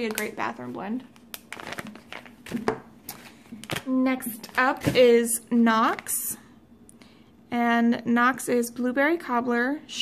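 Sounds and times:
plastic packaging crinkling: 0.0s - 5.0s.

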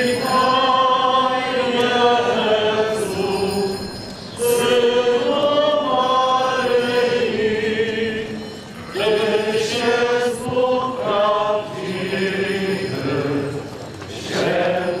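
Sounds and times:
slow church hymn singing: 0.0s - 15.0s.

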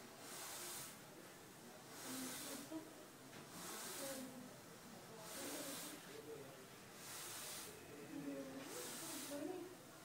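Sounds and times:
air hissing through breathing mask: 0.2s - 1.0s, 1.9s - 2.8s, 3.5s - 4.4s, 5.2s - 6.1s, 7.0s - 7.8s, 8.7s - 9.6s
faint murmuring voice: 0.2s - 10.0s.

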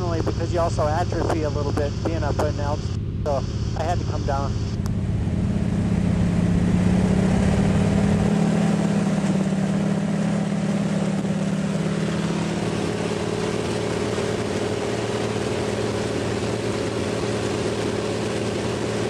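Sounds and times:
propeller plane engine droning: 0.0s - 19.0s.

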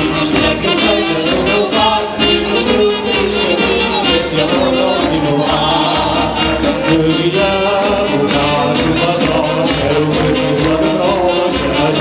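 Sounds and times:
group of voices singing: 0.0s - 12.0s
instrumental accompaniment: 0.0s - 12.0s.

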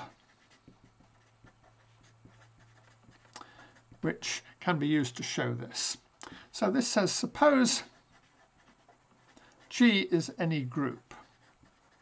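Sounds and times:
marker pen writing on paper: 0.0s - 12.0s.

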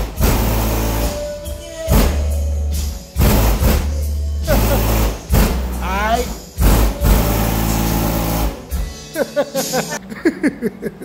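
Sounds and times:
heavy drum hits: 0.0s - 1.1s, 1.9s - 2.4s, 3.2s - 8.9s
song playing through subwoofers: 0.0s - 10.8s.

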